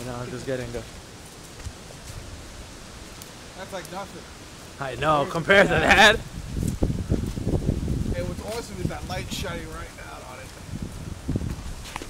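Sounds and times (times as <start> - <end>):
light rain: 0.0 - 12.0
wind hiss: 0.0 - 12.0.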